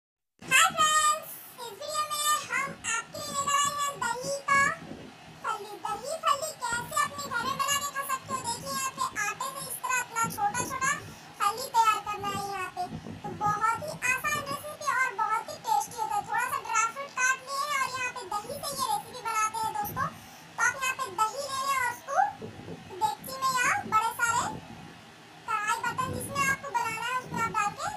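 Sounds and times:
high child-like voice singing: 0.4s - 4.8s, 5.4s - 24.6s, 25.5s - 27.9s.

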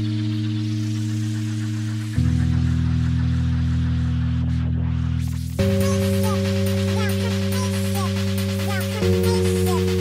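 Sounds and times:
deep held synth chord: 0.0s - 10.0s.

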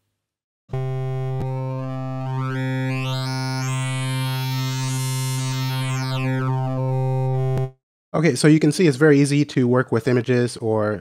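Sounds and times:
synthesizer low note: 0.7s - 7.8s.

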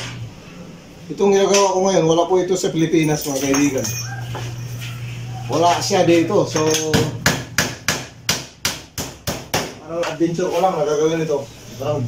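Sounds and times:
hammer nailing into wood: 6.8s - 9.8s.

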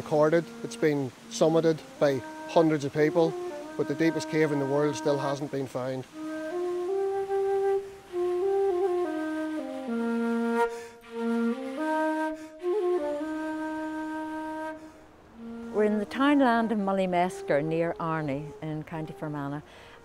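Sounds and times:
slow flute-like melody: 0.0s - 20.0s.

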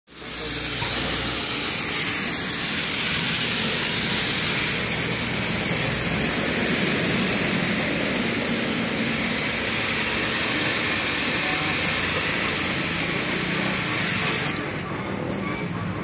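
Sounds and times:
pressure washer jet hissing: 0.1s - 14.9s.

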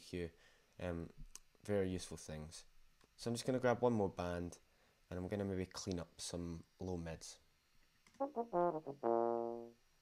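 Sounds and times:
euphonium notes: 8.2s - 9.7s.

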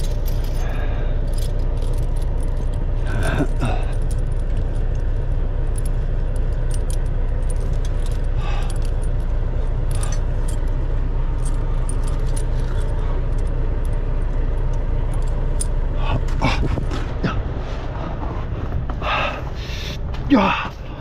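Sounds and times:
steady low rumble: 0.0s - 21.0s
tire chains clinking: 0.0s - 21.0s.

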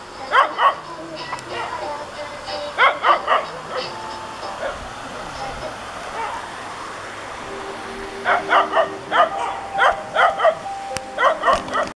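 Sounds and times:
dog yapping: 1.5s - 1.8s, 2.8s - 4.0s, 6.1s - 6.5s, 8.3s - 10.6s, 11.2s - 11.9s.

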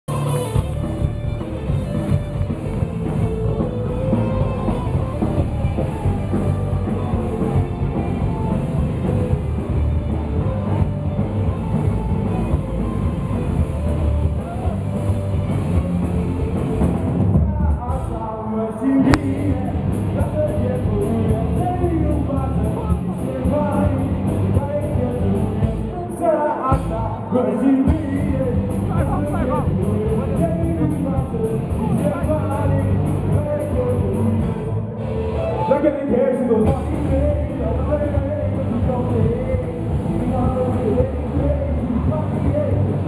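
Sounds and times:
rock band playing live: 0.0s - 43.0s.

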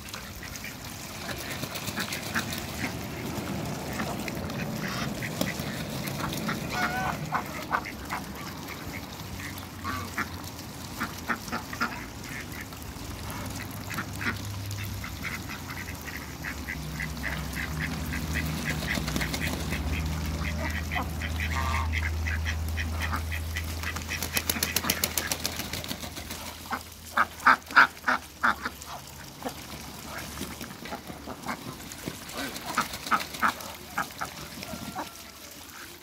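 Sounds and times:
ducks quacking and chattering: 0.0s - 36.0s.

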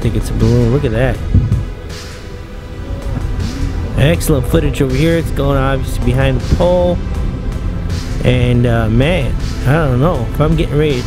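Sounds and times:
background music with low drone: 0.0s - 11.0s.

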